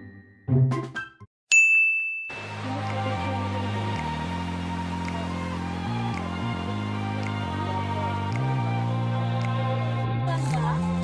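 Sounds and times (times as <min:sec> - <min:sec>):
bright bell ding: 0:01.5 - 0:02.5.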